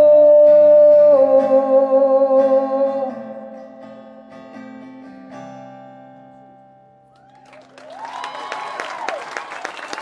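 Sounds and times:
strummed acoustic guitar: 0.0 - 7.1.

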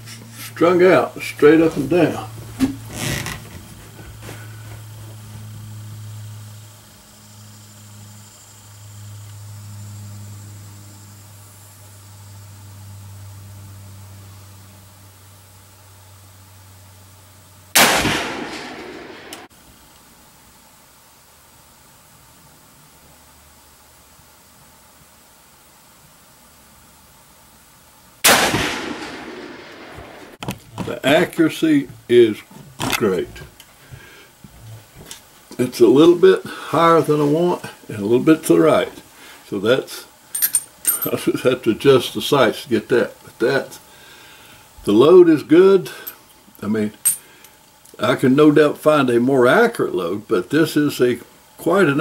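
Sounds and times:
rifle shots: 17.8 - 19.5, 28.2 - 30.4.

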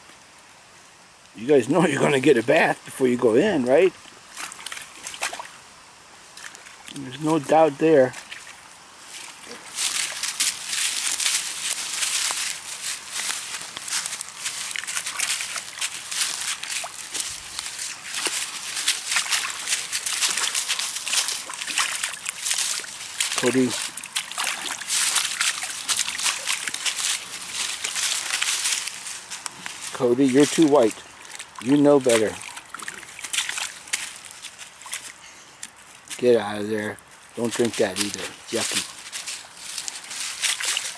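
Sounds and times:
rustling of leaves and mud: 0.0 - 40.9
puppy splashing in muddy puddle: 4.3 - 5.6, 6.3 - 36.3, 37.4 - 40.9.

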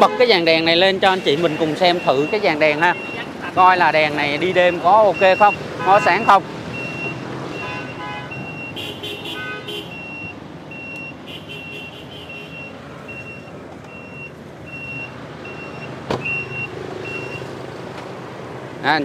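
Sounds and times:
car warning chime beeps: 1.4 - 8.8, 9.9 - 17.5.

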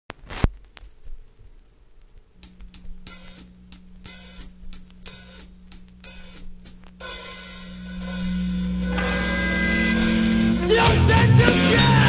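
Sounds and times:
light cymbal taps: 2.0 - 10.4
held low note: 2.4 - 12.0
sustained band chord: 2.4 - 12.0.

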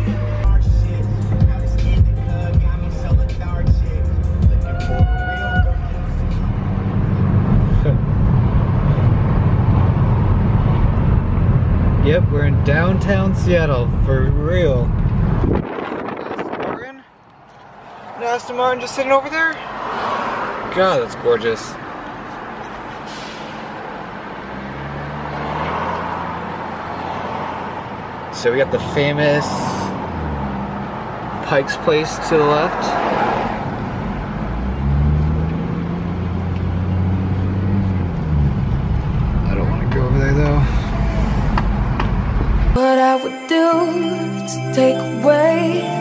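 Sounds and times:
car engine and road noise: 0.0 - 46.0.

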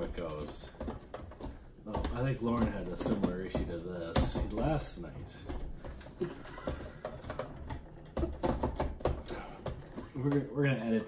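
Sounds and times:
blender plastic clicks and knocks: 0.0 - 11.0
person laughing: 6.2 - 7.4.

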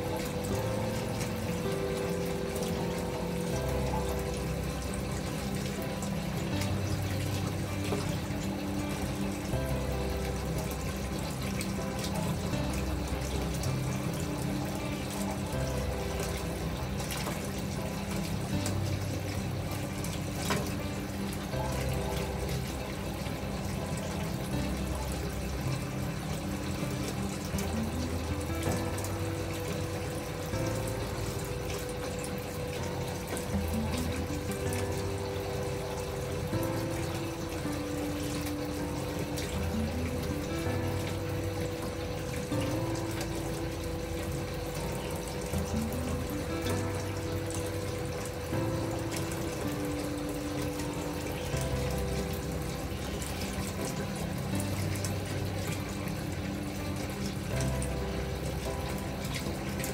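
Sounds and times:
gentle background music: 0.0 - 59.9
water pouring into bathtub: 0.0 - 59.9.

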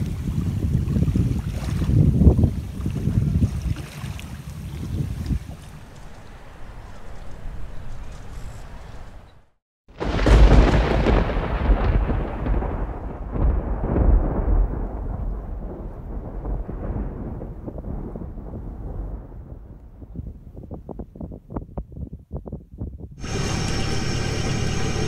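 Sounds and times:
thunder rumbling: 5.5 - 9.2, 9.9 - 20.4, 23.2 - 25.0
short thunder cracks: 10.0 - 19.8.

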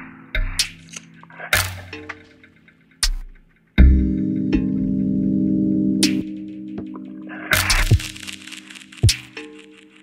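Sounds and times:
crackly clicks: 7.6 - 10.0.

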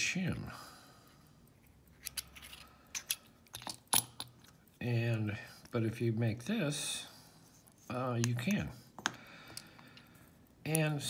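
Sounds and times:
metal lock parts clicking: 1.9 - 4.6.

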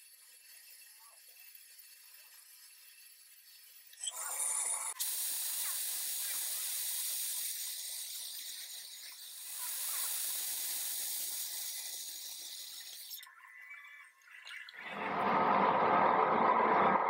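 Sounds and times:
lathe cutting metal: 14.9 - 17.0.

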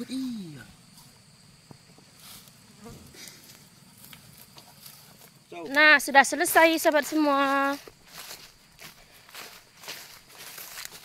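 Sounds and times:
high-pitched insect buzzing: 2.2 - 8.5.

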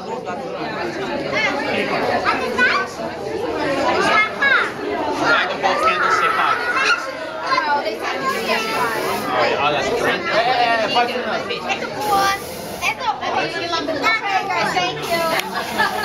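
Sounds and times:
children and adults chattering: 0.0 - 16.0.

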